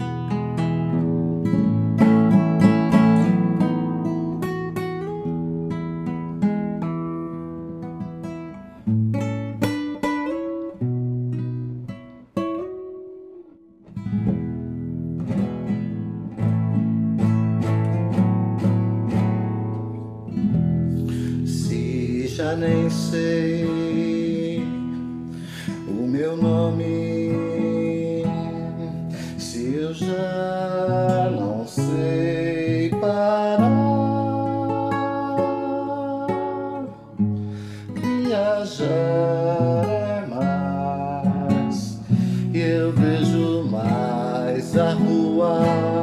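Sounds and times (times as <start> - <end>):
classical guitar fingerpicked: 0.0 - 46.0.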